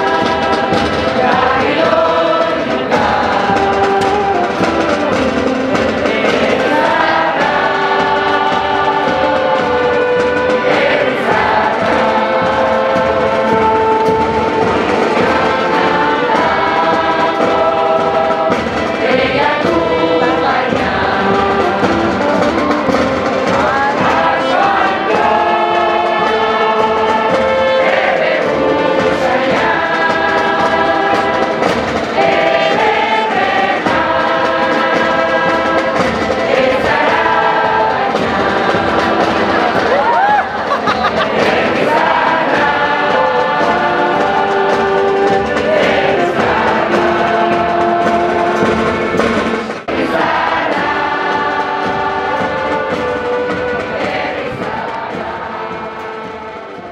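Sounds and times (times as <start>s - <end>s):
group singing in chorus: 0.0s - 56.9s.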